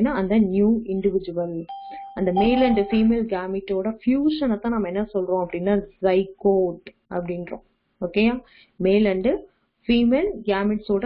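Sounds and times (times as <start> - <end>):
person speaking: 0.0 - 9.2
steady electronic beep tone: 1.6 - 3.3.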